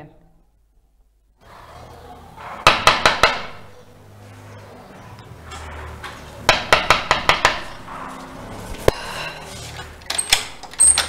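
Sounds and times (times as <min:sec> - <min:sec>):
knocking on wooden door: 0:02.6 - 0:03.6, 0:06.5 - 0:07.7.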